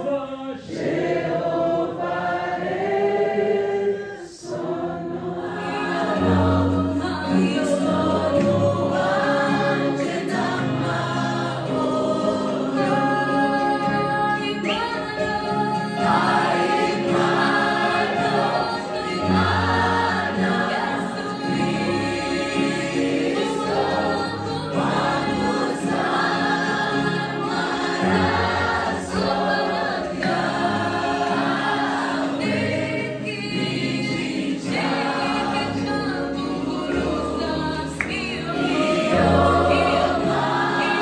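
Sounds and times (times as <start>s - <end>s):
group singing gospel song: 0.0s - 41.0s.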